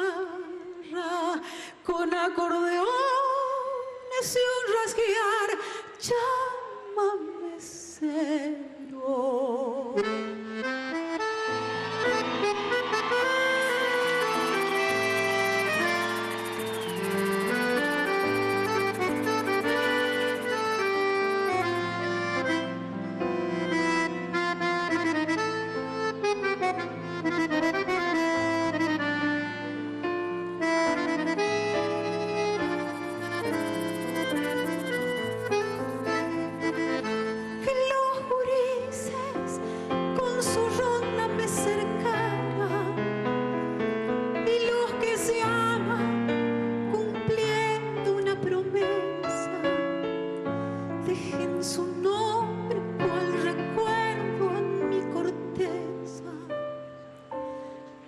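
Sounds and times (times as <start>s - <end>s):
piano accordion playing fast: 10.0s - 43.0s, 50.9s - 55.9s.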